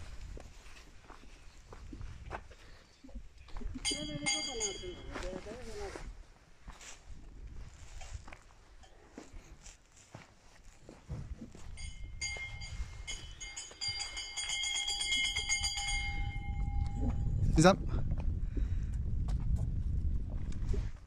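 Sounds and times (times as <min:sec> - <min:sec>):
wind rumbling on microphone: 0:00.0 - 0:06.3, 0:06.9 - 0:08.6, 0:11.0 - 0:21.0
high ringing tone: 0:03.8 - 0:05.6, 0:11.6 - 0:17.6.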